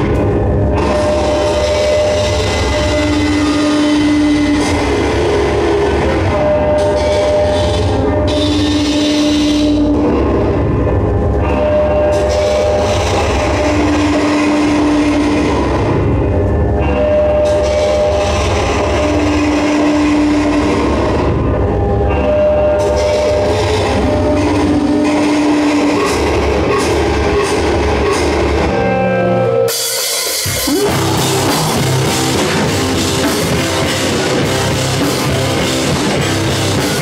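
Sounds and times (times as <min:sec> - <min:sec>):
alternating held notes: 0:00.0 - 0:37.0
metal band playing loud: 0:00.0 - 0:37.0.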